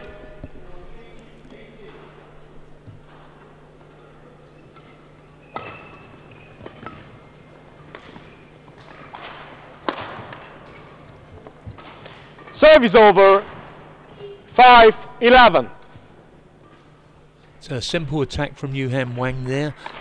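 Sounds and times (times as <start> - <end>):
racket striking shuttlecock: 4.8 - 11.1.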